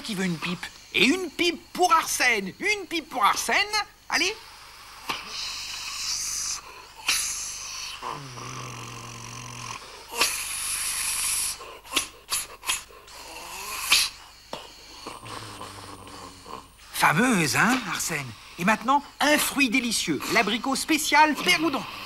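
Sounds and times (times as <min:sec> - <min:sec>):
comic hissing and puffing: 0:04.4 - 0:20.7.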